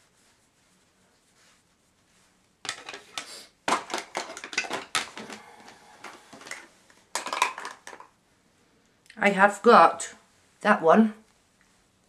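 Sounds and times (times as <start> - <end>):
makeup items clicking and clattering: 2.6 - 8.1.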